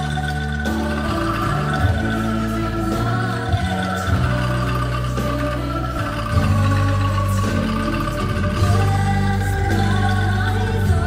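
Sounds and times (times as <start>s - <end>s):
angklung ensemble playing: 0.0s - 11.0s
held low accompaniment: 0.0s - 11.0s
people singing: 0.0s - 11.0s.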